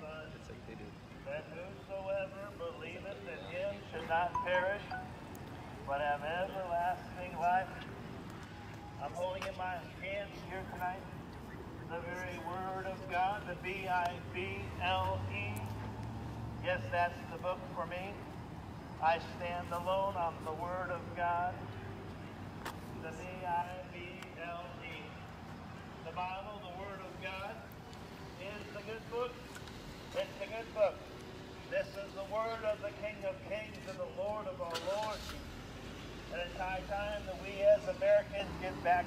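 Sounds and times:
outdoor background hum: 0.0 - 39.0
passing car traffic rumble: 0.0 - 39.0.

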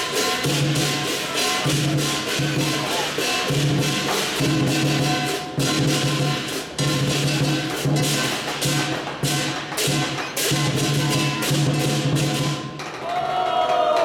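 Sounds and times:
crashing cymbals: 0.0 - 12.8.

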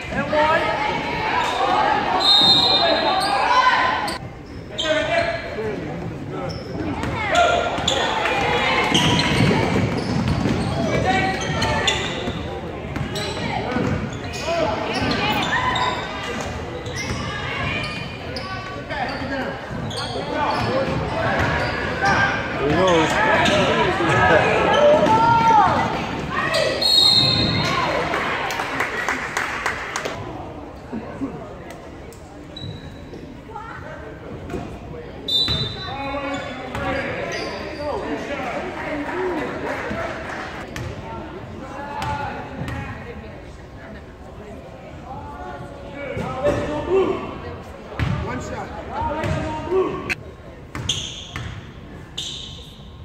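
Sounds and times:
shouts and chatter: 0.0 - 5.6, 7.1 - 29.4.

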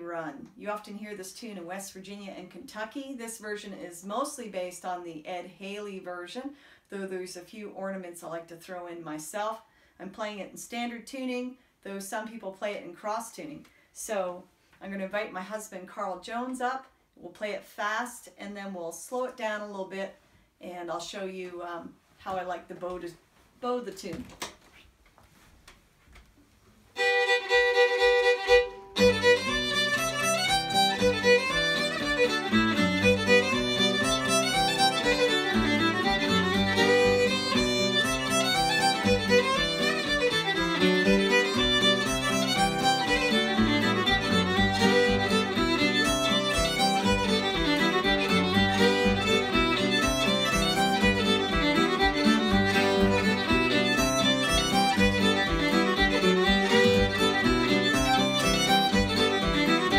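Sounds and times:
fast fiddle tune: 27.0 - 59.9
strummed acoustic guitar: 28.5 - 59.9.

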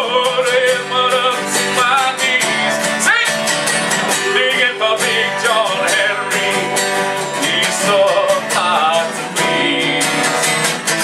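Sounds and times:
acoustic guitars playing folk: 0.0 - 11.0.

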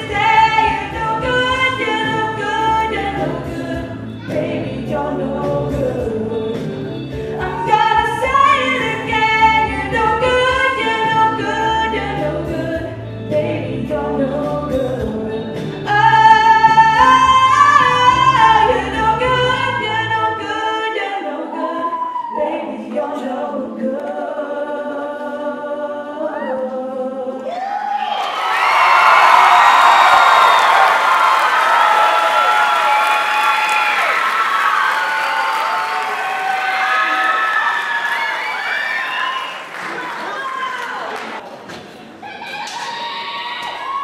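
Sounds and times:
woman singing into microphone: 0.0 - 27.5
audience applause and cheering: 27.5 - 44.0.

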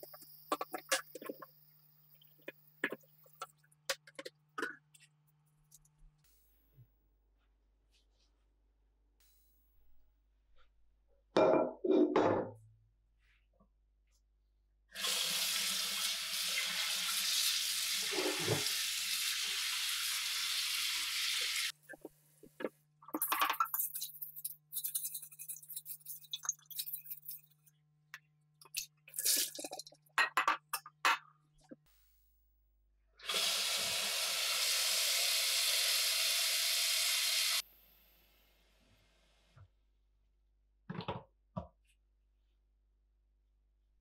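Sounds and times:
tap water running into sink: 15.0 - 20.4.

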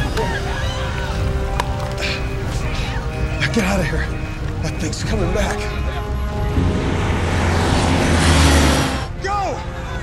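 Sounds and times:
drone flying overhead: 6.2 - 9.2.

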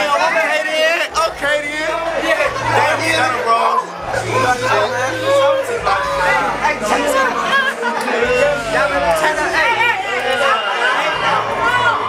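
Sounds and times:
crowd chatter: 0.0 - 12.0
low bass music: 1.1 - 10.5, 11.1 - 12.0.

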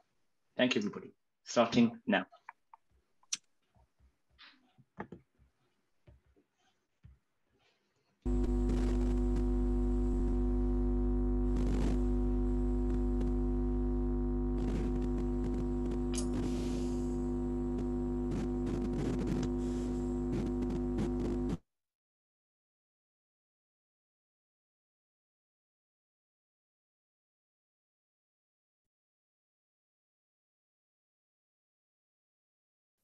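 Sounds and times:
electrical mains hum: 8.3 - 21.6.

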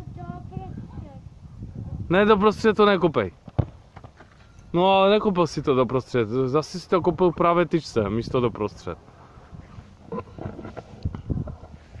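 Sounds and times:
wind buffeting microphone: 0.0 - 6.0, 7.0 - 12.0.

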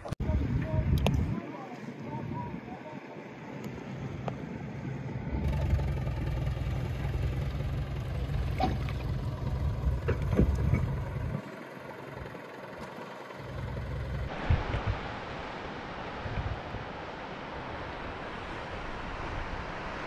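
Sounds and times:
wind noise on microphone: 0.0 - 2.8, 8.4 - 11.4, 14.3 - 20.0
boat engine droning: 0.0 - 20.0.

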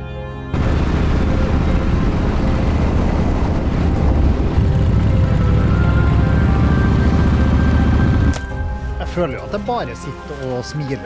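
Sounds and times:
wind noise on microphone: 0.6 - 5.5
motorcycle engine at road speed: 1.3 - 8.4.

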